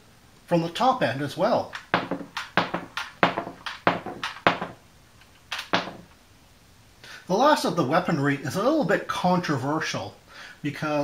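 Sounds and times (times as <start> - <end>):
plastic toy bombs clacking: 1.7 - 4.8, 5.4 - 6.1.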